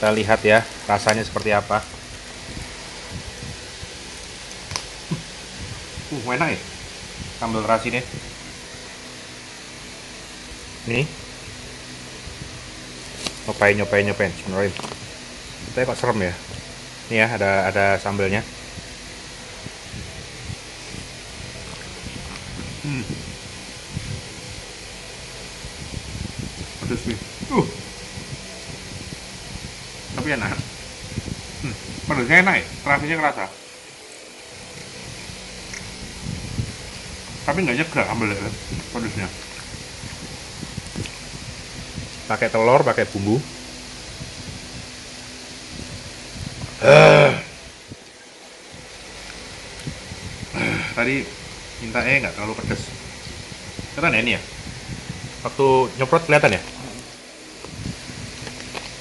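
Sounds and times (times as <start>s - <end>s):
steady background hiss: 0.0s - 59.0s
man humming mmm while eating: 22.3s - 23.5s, 46.7s - 47.7s, 50.5s - 51.0s
chewing and mouth sounds: 38.8s - 41.2s.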